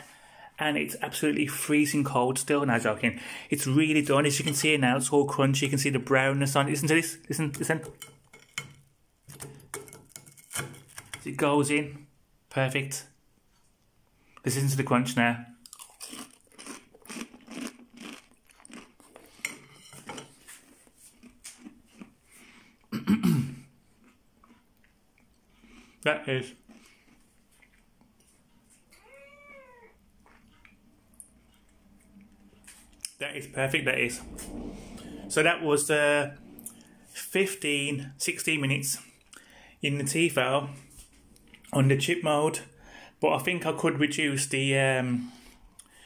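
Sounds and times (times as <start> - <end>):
fork crunching into crispy food: 15.6 - 22.7
cat meowing: 28.9 - 30.0.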